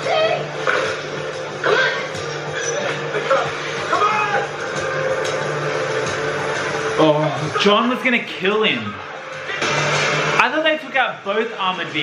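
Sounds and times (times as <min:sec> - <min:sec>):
held background music: 0:00.0 - 0:12.0.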